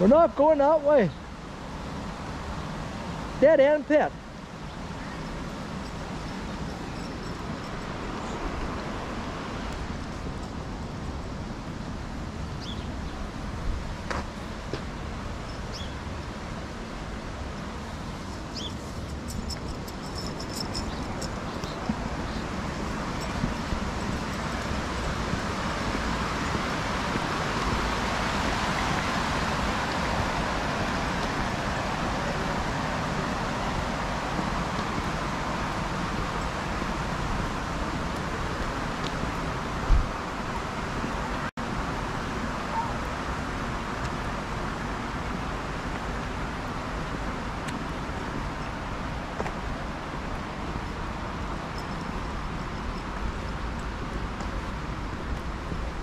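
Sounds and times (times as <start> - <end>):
water rushing over a weir: 0.0 - 56.0
wind rumbling on microphone: 4.6 - 56.0.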